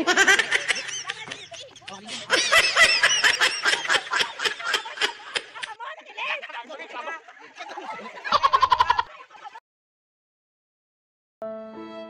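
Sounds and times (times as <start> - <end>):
group of people laughing: 0.0 - 9.6
high-pitched shrieks of laughter: 8.2 - 9.4.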